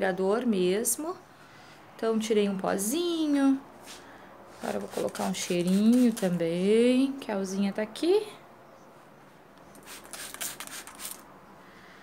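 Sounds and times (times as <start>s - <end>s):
spray bottle hissing: 4.9s - 6.3s, 9.7s - 11.2s.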